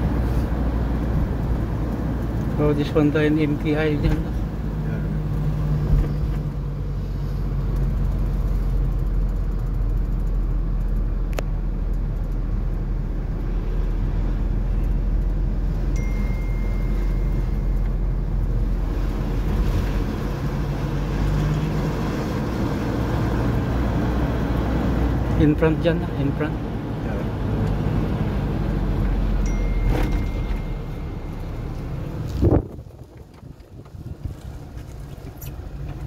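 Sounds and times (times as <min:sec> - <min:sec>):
car engine and road noise: 0:00.0 - 0:36.0
thin high tone: 0:15.9 - 0:18.1, 0:29.4 - 0:31.8.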